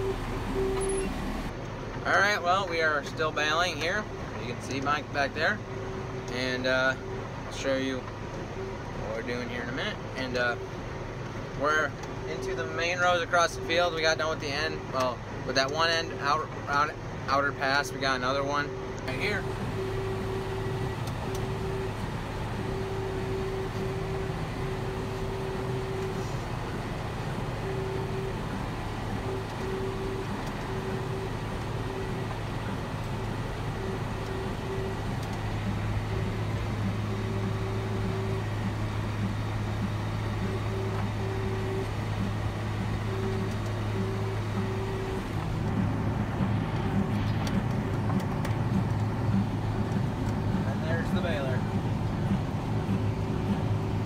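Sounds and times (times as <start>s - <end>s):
tractor engine under load: 0.0s - 6.4s, 19.0s - 54.0s.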